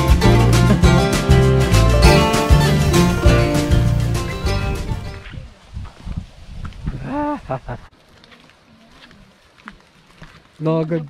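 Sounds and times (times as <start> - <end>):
footsteps on dirt trail: 7.8 - 11.0.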